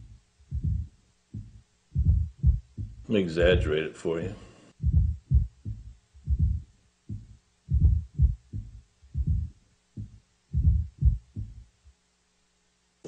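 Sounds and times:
dull low drum thumps: 0:00.0 - 0:03.8, 0:04.8 - 0:11.8.

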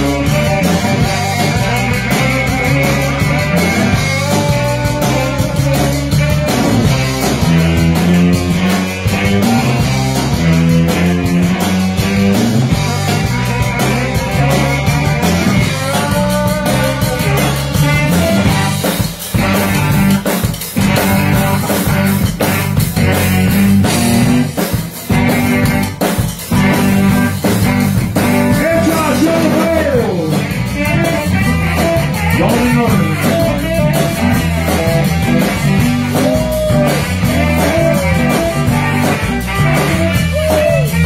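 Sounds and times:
bending melody line: 0:00.0 - 0:41.0
zydeco band playing: 0:00.0 - 0:41.0.

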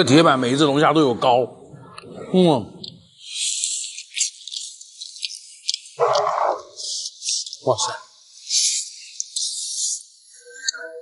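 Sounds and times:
sticky chewing clicks: 0:02.8 - 0:07.7.

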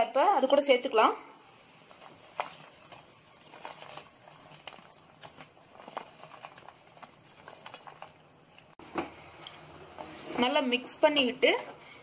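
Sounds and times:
food pieces tapping and rustling: 0:01.8 - 0:10.4.

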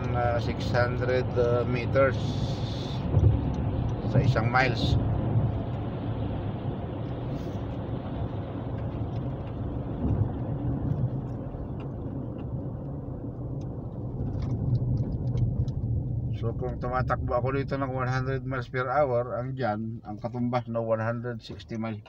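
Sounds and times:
engine and tyres rumbling: 0:00.0 - 0:22.0
road hiss: 0:01.3 - 0:09.4.

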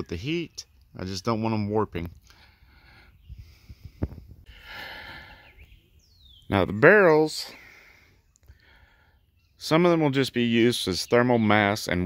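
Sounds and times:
person breathing out: 0:02.3 - 0:05.6.

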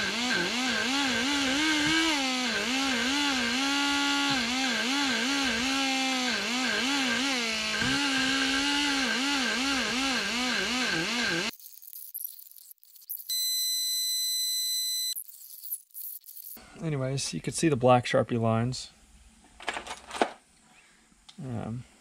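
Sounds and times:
die grinder cutting metal: 0:00.0 - 0:11.5.

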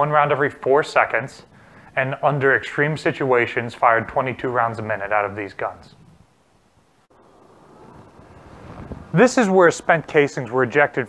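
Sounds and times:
wind on microphone: 0:07.1 - 0:10.1.

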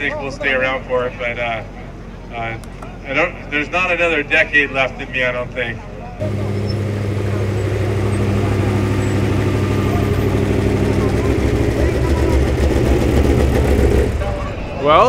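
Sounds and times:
truck engine idling: 0:05.8 - 0:15.0.

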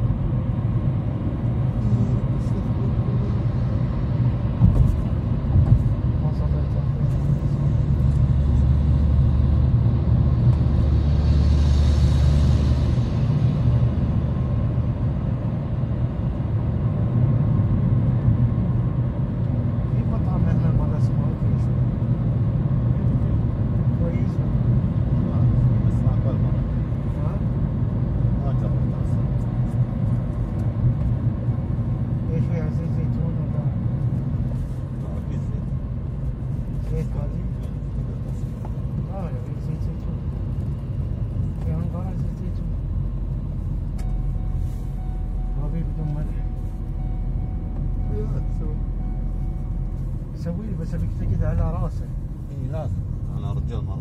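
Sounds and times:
road and engine rumble: 0:00.0 - 0:54.0.

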